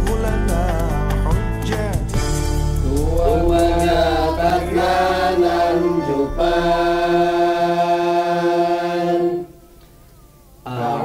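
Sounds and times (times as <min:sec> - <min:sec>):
man chanting recitation: 0:02.8 - 0:04.7.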